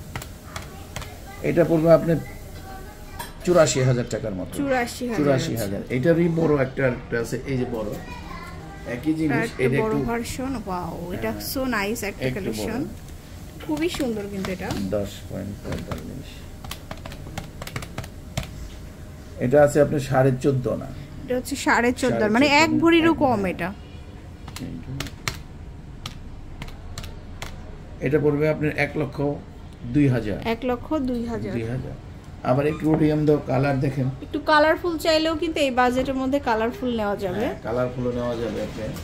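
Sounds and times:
person speaking: 0:08.9 - 0:13.0, 0:21.3 - 0:23.8.

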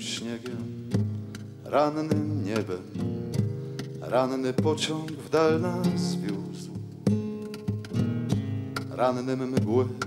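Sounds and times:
acoustic guitar plucked chords: 0:00.0 - 0:10.0.

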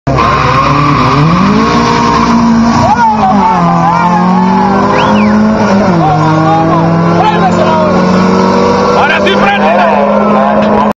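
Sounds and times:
car engine at full throttle: 0:00.1 - 0:10.9
people shouting: 0:02.8 - 0:05.5.

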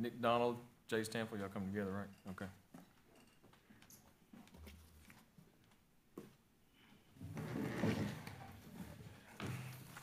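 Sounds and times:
chair dragged across floor: 0:07.2 - 0:10.0.

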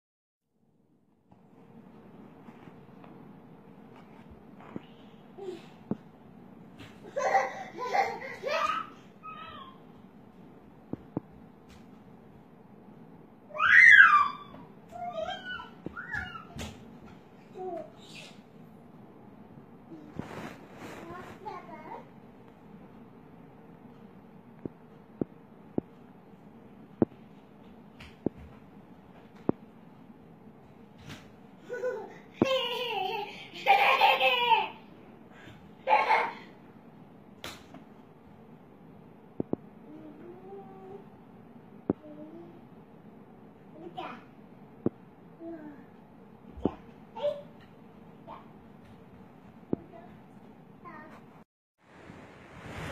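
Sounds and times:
high-pitched cry: 0:13.6 - 0:16.5.

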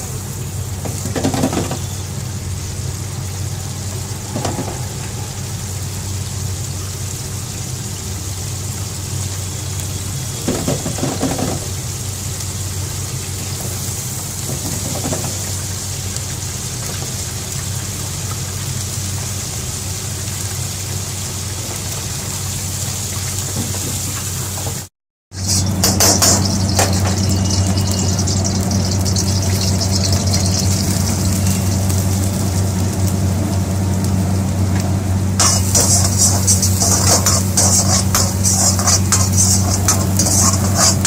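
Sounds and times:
fryer low hum: 0:00.0 - 0:41.0
hot oil sizzling: 0:00.0 - 0:41.0.

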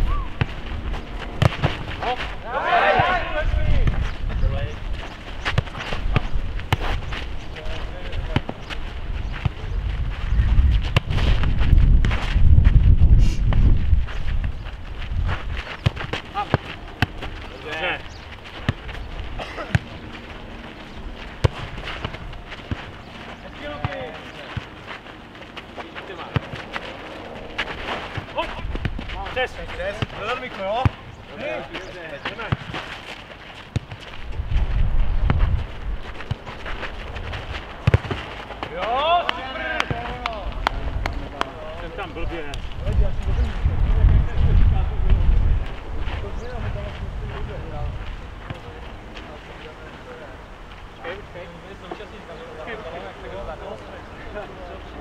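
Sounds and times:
ball kicked and headed thuds: 0:00.3 - 0:02.3, 0:05.0 - 0:07.2, 0:08.2 - 0:09.7, 0:10.8 - 0:12.7, 0:21.4 - 0:23.0, 0:32.3 - 0:32.8, 0:33.7 - 0:35.6, 0:36.2 - 0:39.0
players shouting: 0:01.9 - 0:04.0, 0:16.1 - 0:18.1, 0:37.8 - 0:42.2.

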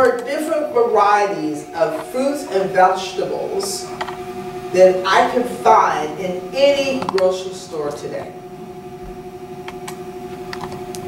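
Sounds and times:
two-tone electrical hum: 0:00.0 - 0:11.0.

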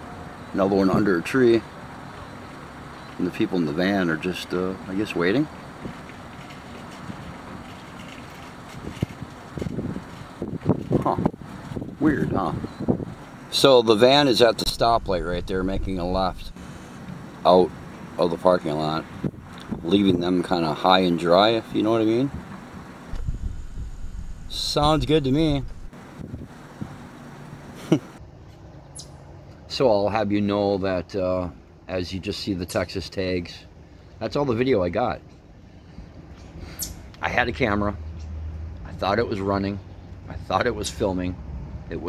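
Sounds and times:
distant traffic: 0:00.0 - 0:42.0
outdoor background hiss: 0:00.0 - 0:42.0
wind on microphone: 0:08.7 - 0:13.2, 0:14.6 - 0:16.6, 0:23.1 - 0:27.0.

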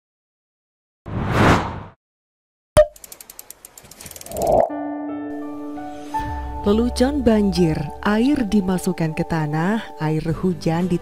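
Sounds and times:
rapid ratchet-like ticks: 0:02.9 - 0:04.5.

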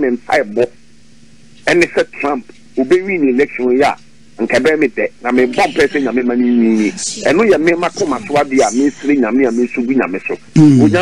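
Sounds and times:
man talking: 0:00.0 - 0:00.7, 0:01.6 - 0:11.0.

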